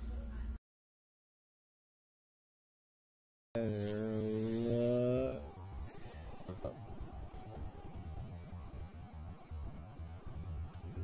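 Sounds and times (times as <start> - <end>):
faint scattered noise: 3.6 - 11.0
low hum rising in pitch: 3.6 - 11.0.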